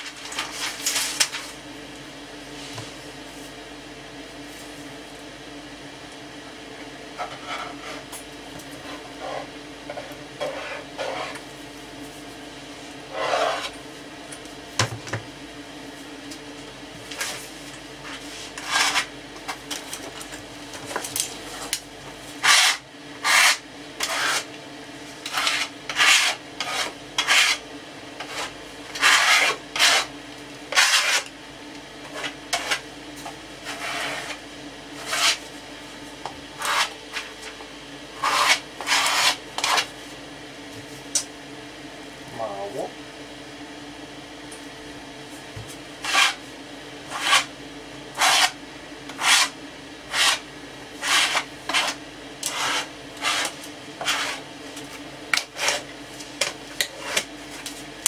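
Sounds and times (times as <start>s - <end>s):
rasping rubbing strokes on wood: 28.2s - 30.1s, 49.2s - 49.5s, 51.0s - 54.4s.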